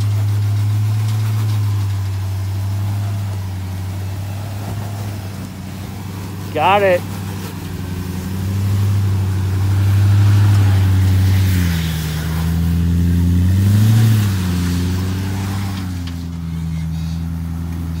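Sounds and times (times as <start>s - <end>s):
engine running at low revs: 0.0s - 18.0s.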